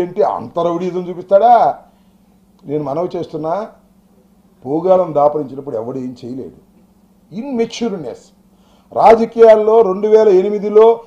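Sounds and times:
man speaking into microphones: 0:00.0 - 0:01.8, 0:02.6 - 0:03.8, 0:04.6 - 0:06.6, 0:07.3 - 0:11.0
faint steady hum: 0:00.0 - 0:11.0.

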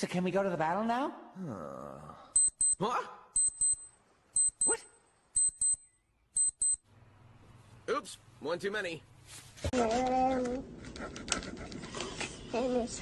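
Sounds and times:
electronic alarm double beeps: 0:02.4 - 0:02.8, 0:03.4 - 0:04.8, 0:05.4 - 0:06.8.

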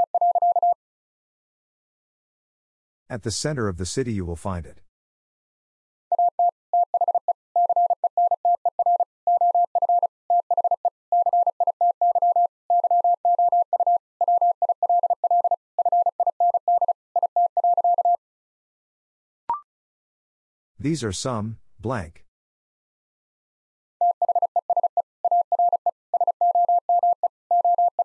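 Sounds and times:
morse code beeps: 0:00.0 - 0:00.8, 0:06.1 - 0:18.2, 0:24.0 - 0:28.0.

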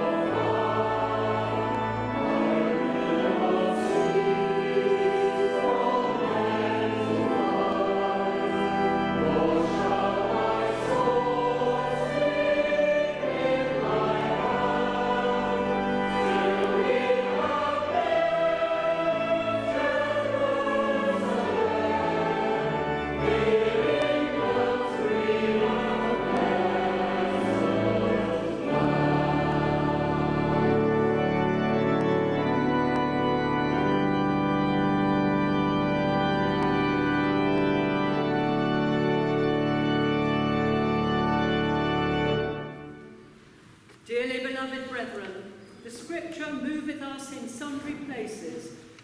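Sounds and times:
choir and congregation singing hymn: 0:00.0 - 0:43.2
church organ: 0:00.0 - 0:49.0.

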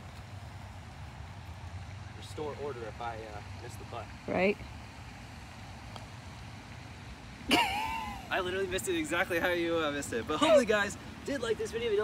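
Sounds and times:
low outdoor rumble: 0:00.0 - 0:12.0
putter tapping golf ball: 0:05.8 - 0:06.2
laughter: 0:07.5 - 0:08.3.

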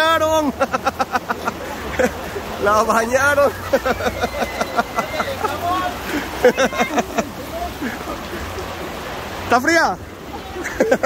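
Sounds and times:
people talking: 0:00.0 - 0:01.6, 0:02.6 - 0:08.6, 0:09.4 - 0:11.0.

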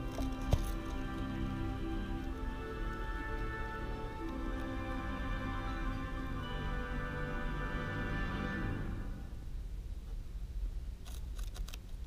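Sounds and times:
low steady rumble: 0:00.0 - 0:12.0
guinea pig chewing crunchy leaf: 0:11.0 - 0:12.0.

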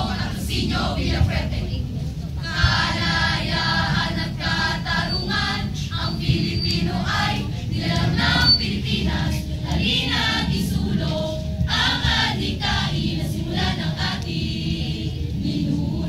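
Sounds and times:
choir of voices singing: 0:00.0 - 0:16.0.

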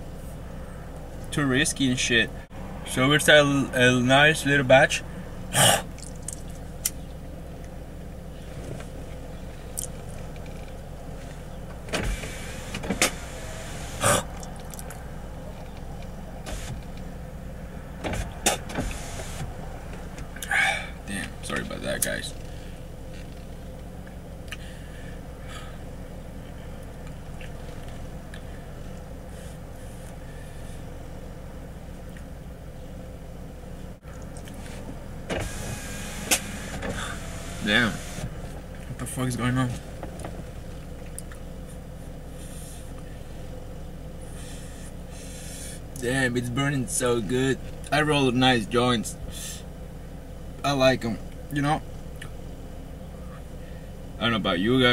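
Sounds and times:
steady low hum: 0:00.0 - 0:54.9
car window motor whining: 0:11.7 - 0:17.2, 0:17.9 - 0:20.4, 0:34.6 - 0:38.7
window motor click: 0:35.3 - 0:38.3.

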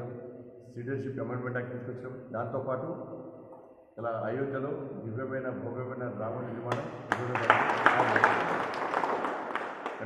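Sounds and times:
people applauding: 0:06.7 - 0:10.0.

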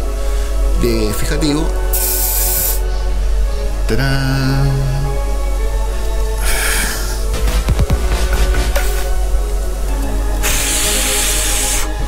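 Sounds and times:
background music: 0:00.0 - 0:12.0
aerosol spray hiss: 0:01.9 - 0:03.1, 0:08.5 - 0:09.3, 0:10.3 - 0:12.0.

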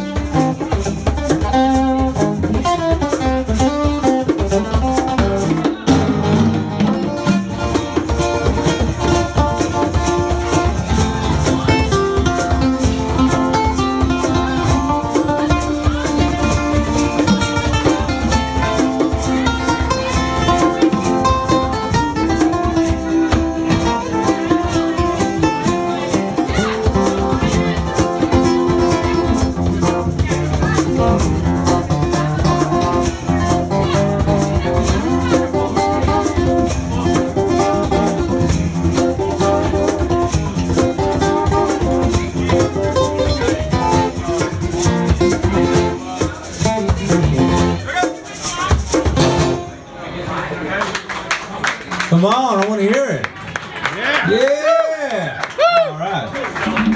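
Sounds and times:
hand drums beating: 0:00.0 - 0:49.7
acoustic guitars strummed: 0:00.0 - 0:50.3.

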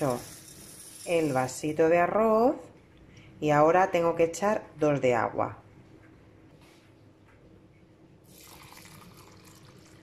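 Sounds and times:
water trickling into a bowl: 0:08.3 - 0:10.0.

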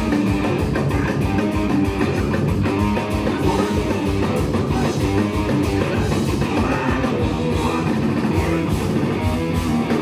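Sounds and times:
drum kit: 0:00.0 - 0:10.0
electric bass: 0:00.0 - 0:10.0
electric guitar: 0:00.0 - 0:10.0.

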